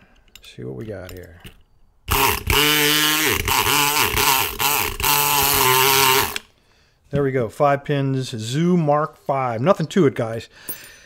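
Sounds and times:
electric pick gun buzzing: 2.1 - 6.5.

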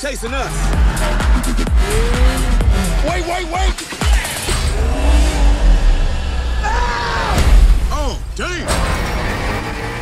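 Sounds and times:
car engines revving: 0.0 - 6.7, 8.6 - 10.0
deep bass rumble: 0.0 - 9.4.

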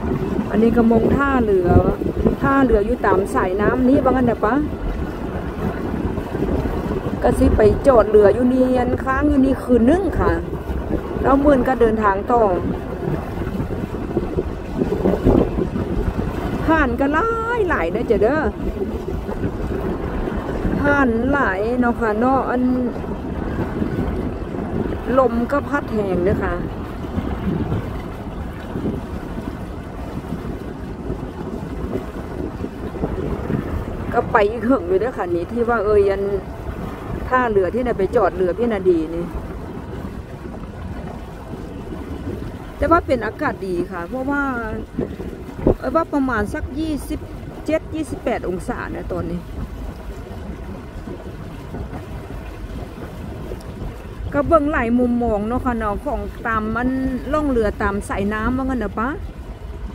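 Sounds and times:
water rushing past boat: 0.0 - 59.9
wind buffeting microphone: 0.0 - 59.9.

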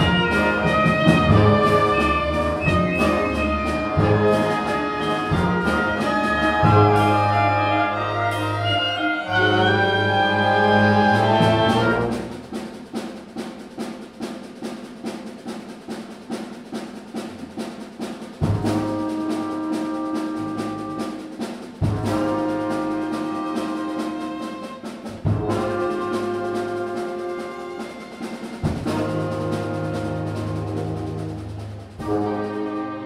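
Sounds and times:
loud brass chords: 0.0 - 12.5, 18.4 - 33.0
orchestra playing: 0.0 - 33.0.

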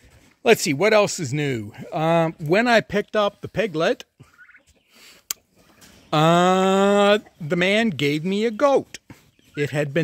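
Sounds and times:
turkeys calling: 1.8 - 10.0.

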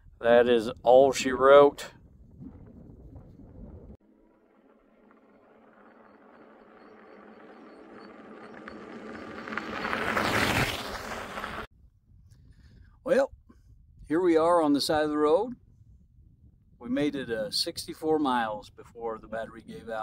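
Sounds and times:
vehicle passing: 4.1 - 11.7.

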